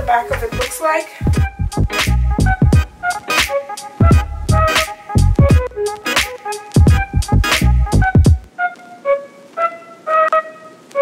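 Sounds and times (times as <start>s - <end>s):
heavy bass and beat: 0.0s - 8.5s
held electronic melody notes: 0.0s - 11.0s.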